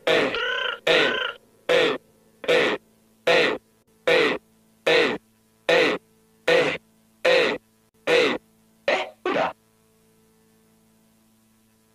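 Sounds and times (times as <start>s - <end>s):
faint steady hum: 0.0s - 11.9s.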